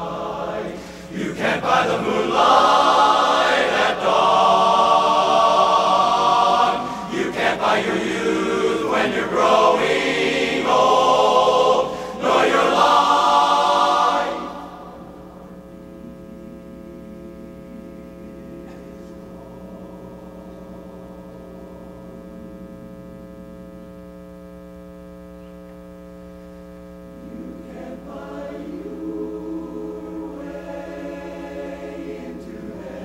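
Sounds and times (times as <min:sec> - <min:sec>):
men's chorus singing a cappella: 0:00.0 - 0:15.2, 0:27.3 - 0:33.0
quiet steady hum: 0:00.0 - 0:33.0.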